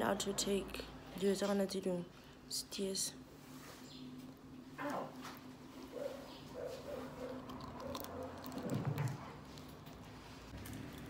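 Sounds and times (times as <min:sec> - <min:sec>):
person chewing: 0:06.8 - 0:10.0.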